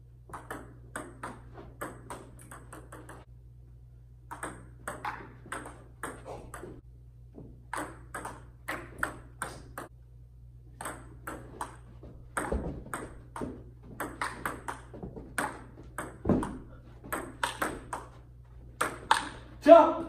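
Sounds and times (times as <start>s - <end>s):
table tennis ball clicks: 0.3s - 3.2s, 4.3s - 6.7s, 7.7s - 9.9s, 12.4s - 18.1s, 18.8s - 19.4s.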